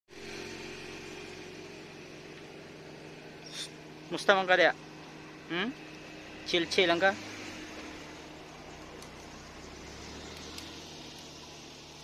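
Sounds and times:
vehicle engine idling: 0.1s - 12.0s.

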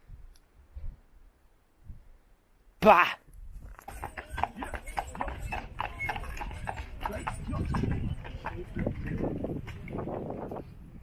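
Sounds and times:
horse hooves on asphalt: 3.5s - 11.0s.

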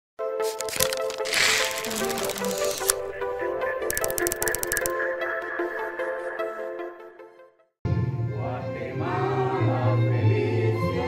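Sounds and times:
sharp clicks: 0.5s - 3.0s, 3.9s - 5.0s.

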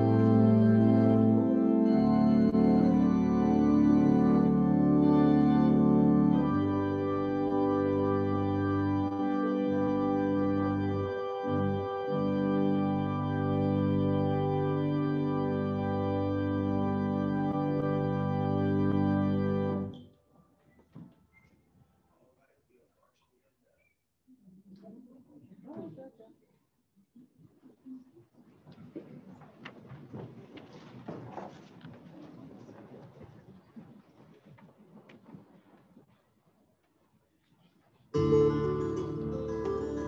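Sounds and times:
organ playing slow chords: 0.0s - 20.0s, 38.2s - 40.0s.

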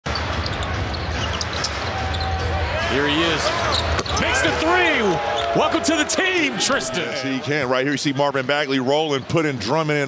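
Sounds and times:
arena crowd noise: 0.1s - 10.0s.

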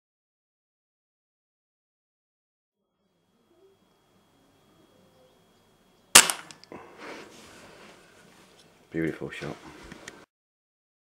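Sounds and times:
air rifle shot: 6.2s - 6.6s.

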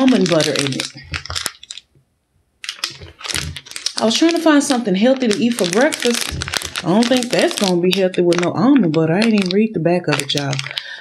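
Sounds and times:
plastic wrapper crinkling: 0.0s - 2.0s, 2.6s - 11.0s.

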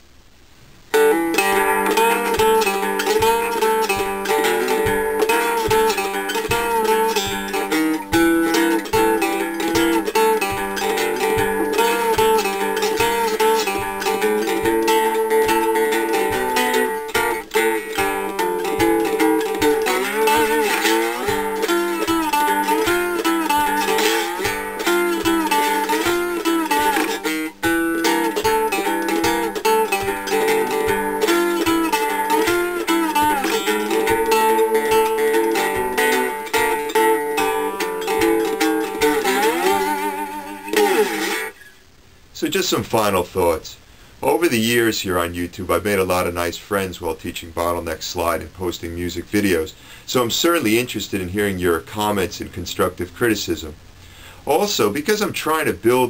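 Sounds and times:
fingerpicked guitar: 0.9s - 41.8s.

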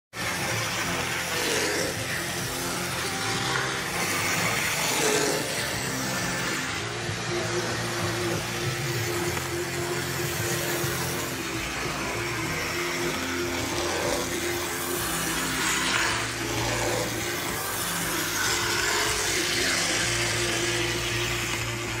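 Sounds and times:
high-pitched motor whine: 0.1s - 22.0s
model locomotive humming: 0.1s - 22.0s.

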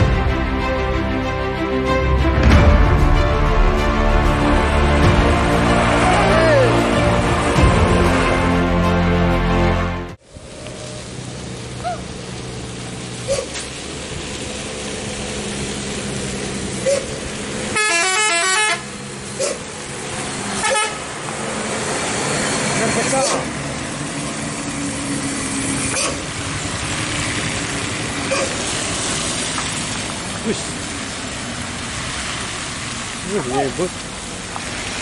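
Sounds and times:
heavy truck engine running: 0.0s - 35.0s
vehicles passing on wet road: 0.0s - 35.0s
multi-tone horn tune: 17.7s - 18.9s, 20.6s - 21.1s.

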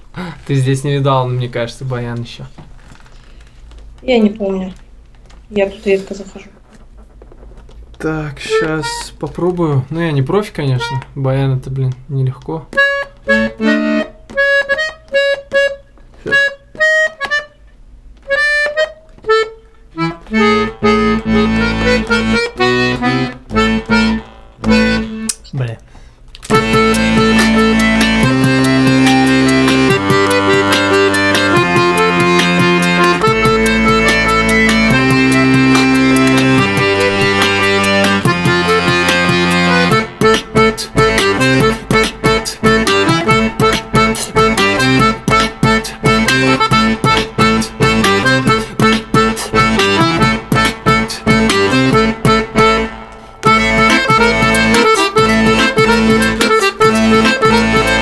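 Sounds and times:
button accordion playing: 8.0s - 25.4s, 26.4s - 58.0s.

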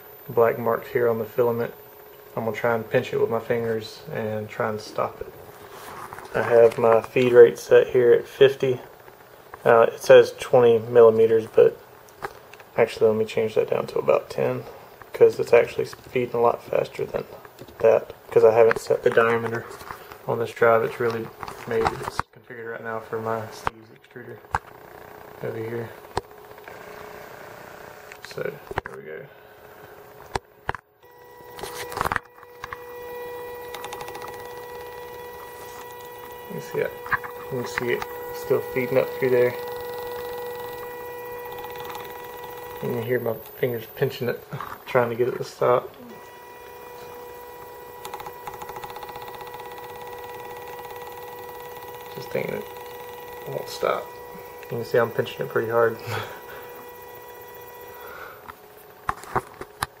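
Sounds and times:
extruder motor whine: 0.0s - 28.8s, 29.5s - 60.0s
stepper motor whine: 31.0s - 58.8s.

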